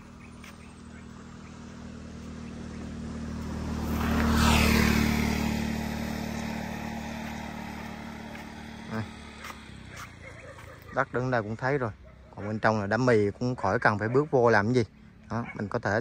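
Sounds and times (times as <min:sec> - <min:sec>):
vehicle passing on road: 0:00.0 - 0:16.0.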